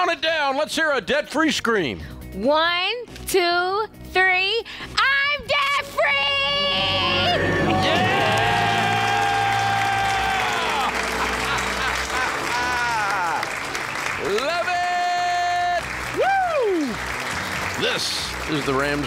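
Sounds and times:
music: 0.0s - 19.0s
studio applause: 6.3s - 19.0s
cheering whoops: 6.9s - 17.0s.

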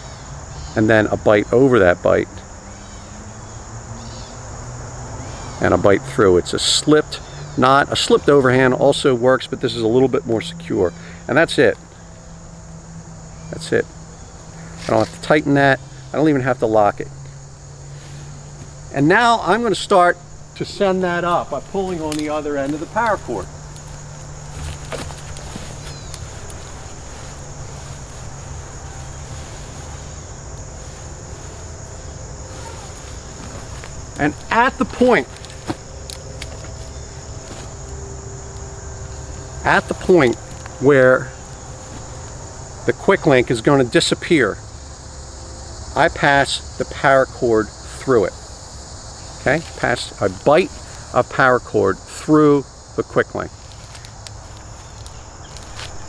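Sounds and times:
insects trilling: 0.0s - 56.0s.

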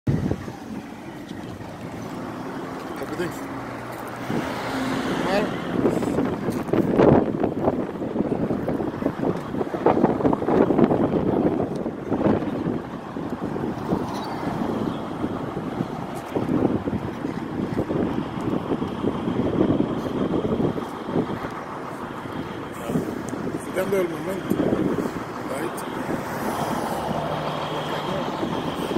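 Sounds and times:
vehicles passing: 0.0s - 28.9s
wind buffeting microphone: 0.1s - 28.9s
people talking: 2.9s - 3.5s, 5.1s - 6.2s, 22.7s - 24.8s, 25.4s - 26.3s, 27.4s - 28.9s.

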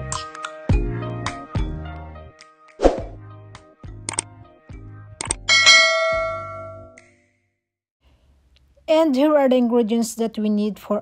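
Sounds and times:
background music with bass line: 0.0s - 2.4s, 3.0s - 5.9s
quick clicks: 4.1s - 4.3s
bright bell ding: 5.5s - 6.9s.

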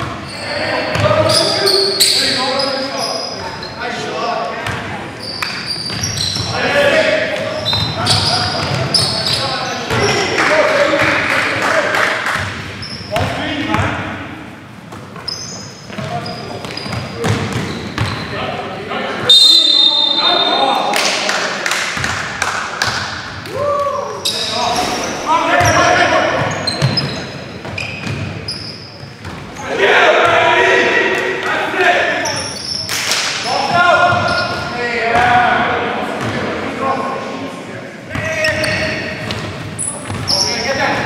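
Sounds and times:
sneaker squeaks: 0.0s - 4.0s, 4.6s - 10.3s, 12.4s - 13.9s, 14.8s - 18.6s, 19.2s - 20.7s, 23.9s - 29.7s, 32.2s - 34.8s, 38.1s - 41.0s
players calling out: 23.0s - 36.8s.

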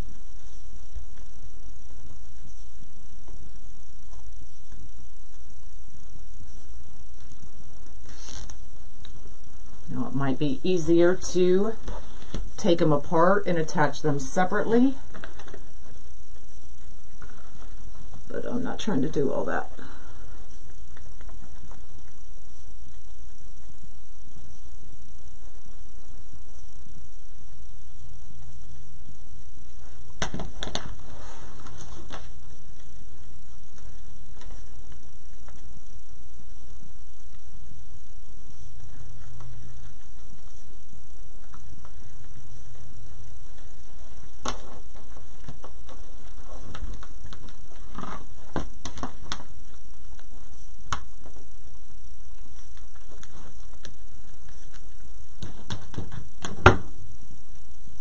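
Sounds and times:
steady background hiss and hum: 0.0s - 58.0s.

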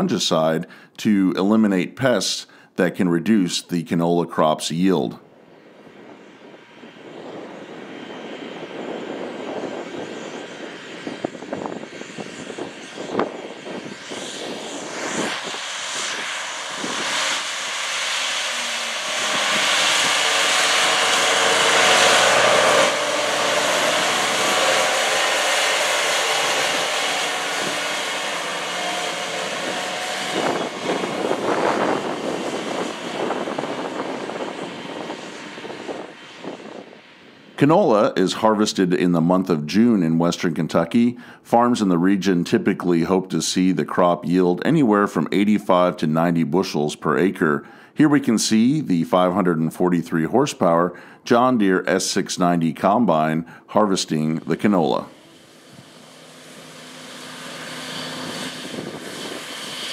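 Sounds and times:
sprayer engine running: 12.7s - 37.1s, 54.1s - 59.9s.

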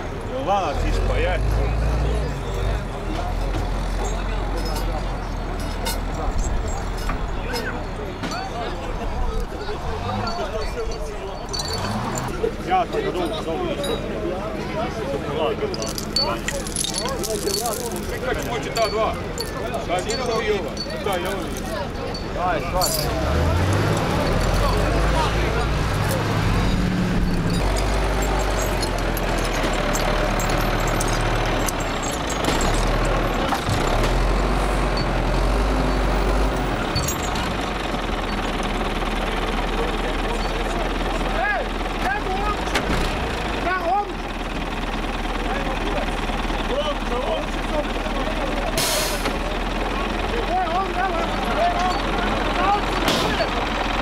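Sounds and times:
crowd chatter: 0.0s - 54.0s
heavy vehicle engine droning: 0.0s - 54.0s.

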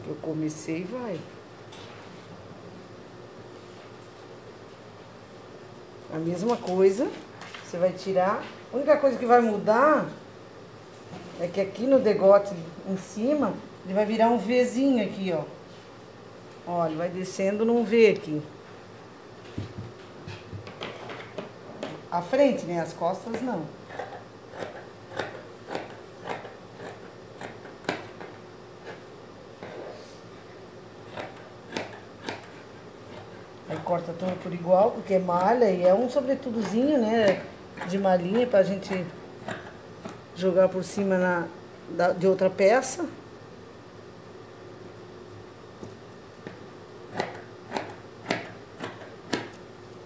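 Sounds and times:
faint steady hum: 0.0s - 50.0s
scissors snipping fabric: 23.9s - 29.0s, 31.0s - 34.5s, 47.1s - 49.6s.

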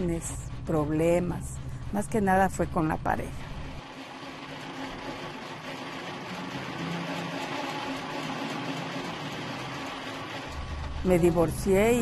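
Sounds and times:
hand-cranked grain mill grinding: 3.6s - 12.0s.

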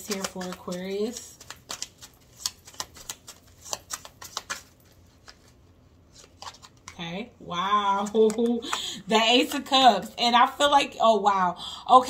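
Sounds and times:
cards clicking and snapping: 0.0s - 5.6s, 6.2s - 7.0s.

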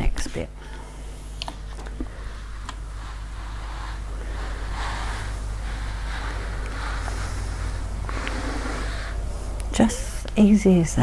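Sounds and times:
steady low hum: 0.0s - 11.0s
iron swishing on fabric: 2.2s - 9.2s.

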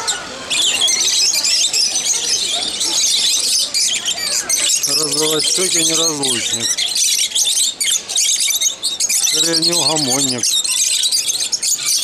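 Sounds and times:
lovebirds chattering: 0.0s - 12.0s.

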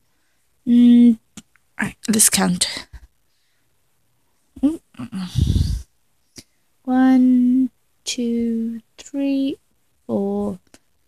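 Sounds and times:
rough low noise: 4.5s - 6.0s.

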